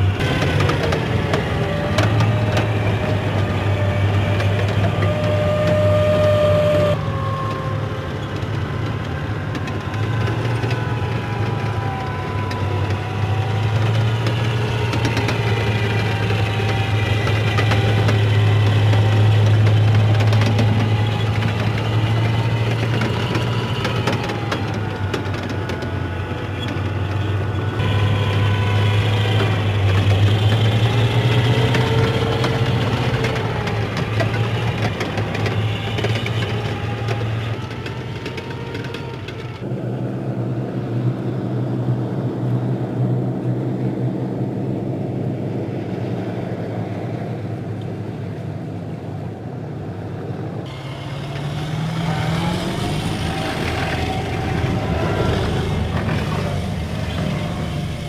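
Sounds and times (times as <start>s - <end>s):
diesel engine drone: 0.0s - 58.0s
vehicle tracks rattling: 0.0s - 58.0s.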